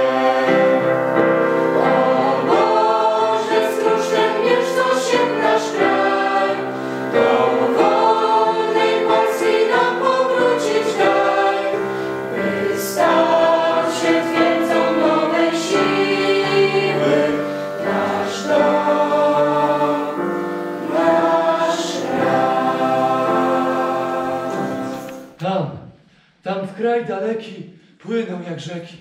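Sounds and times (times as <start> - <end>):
mixed choir singing a hymn: 0.0 - 25.4.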